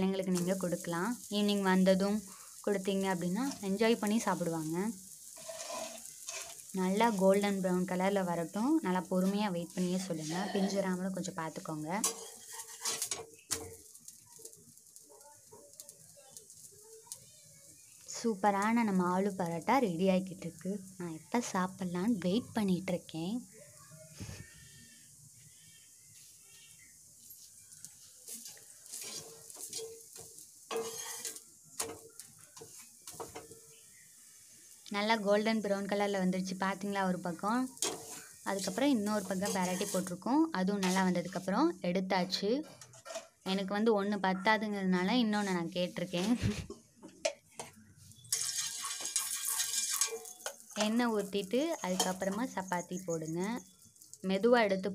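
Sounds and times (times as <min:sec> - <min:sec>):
faint sizzling: 0:00.0 - 0:54.9
metal spatula scraping iron pan: 0:05.2 - 0:07.2, 0:12.0 - 0:14.0, 0:28.3 - 0:33.6, 0:37.7 - 0:40.2, 0:40.8 - 0:41.1, 0:42.6 - 0:43.4, 0:48.3 - 0:53.4.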